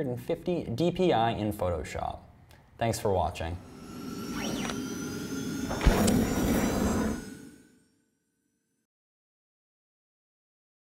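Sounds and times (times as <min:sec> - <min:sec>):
whoosh: 0:03.5 - 0:07.9
sharp low hit: 0:03.6 - 0:07.4.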